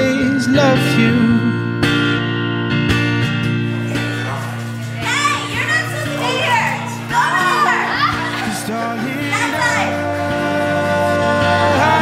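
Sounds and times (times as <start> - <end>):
woman calling out: 5.0 - 8.6.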